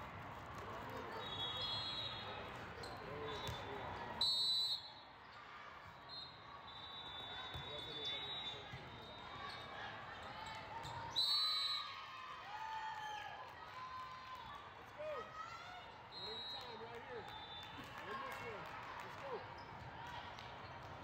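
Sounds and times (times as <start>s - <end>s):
referee's whistle blasts: 1.2s - 2.3s, 4.2s - 5.1s, 6.0s - 9.3s, 11.1s - 11.9s.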